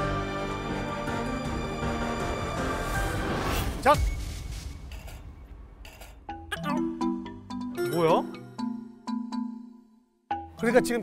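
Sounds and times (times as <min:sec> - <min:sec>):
comic chiming sound effect: 0:06.5 - 0:09.8.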